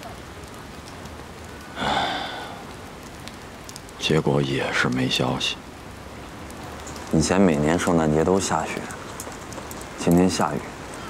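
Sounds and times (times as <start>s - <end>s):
steady rain falling: 0.0s - 11.0s
breathy vocal sigh: 1.7s - 2.7s.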